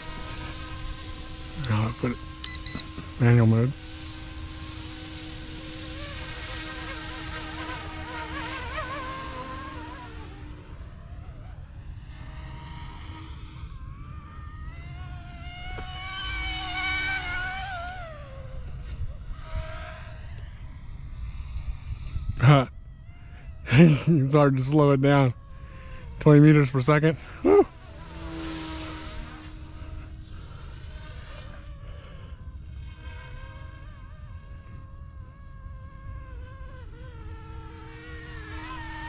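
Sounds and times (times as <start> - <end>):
model helicopter whine: 0.0 - 39.0.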